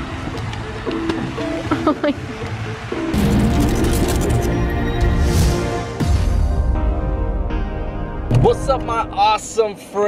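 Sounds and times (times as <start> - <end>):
background music with held notes: 0.0 - 9.6.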